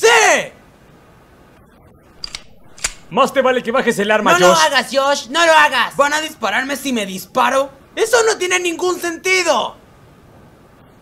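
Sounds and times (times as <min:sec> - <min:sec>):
handgun cocking clicks: 0:02.2 - 0:03.1.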